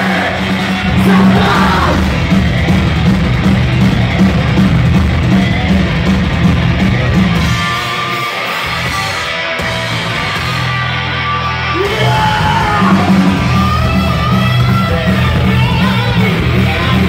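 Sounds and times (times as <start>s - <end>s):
shouted vocals: 0.0s - 2.2s, 11.6s - 14.3s
punk rock band playing live: 0.0s - 17.0s.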